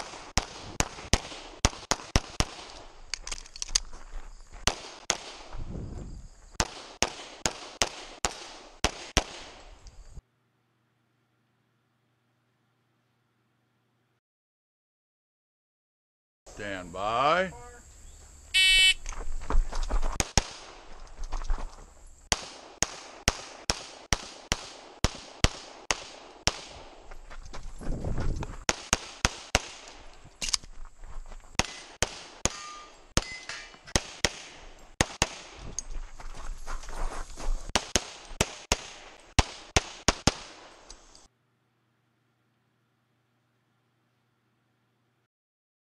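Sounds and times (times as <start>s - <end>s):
rapid pistol shots: 0.0s - 2.8s, 6.6s - 9.6s, 22.3s - 26.9s, 28.7s - 29.9s, 31.6s - 33.3s, 33.9s - 35.6s, 37.7s - 40.8s.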